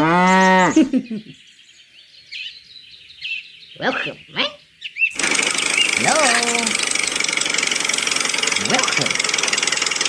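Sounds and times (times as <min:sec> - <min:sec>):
small engine running: 0:05.1 - 0:10.0.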